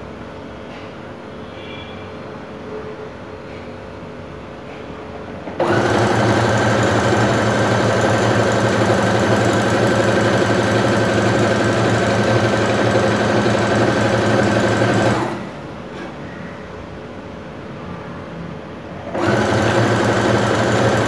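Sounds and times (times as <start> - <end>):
electric sewing machine running: 5.5 - 15.5, 19.0 - 21.0.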